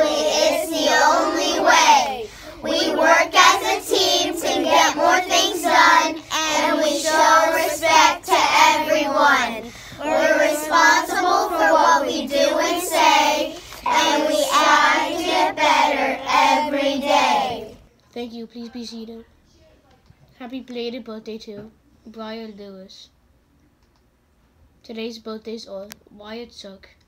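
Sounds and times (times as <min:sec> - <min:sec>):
children reciting in unison: 0:00.0 - 0:17.8.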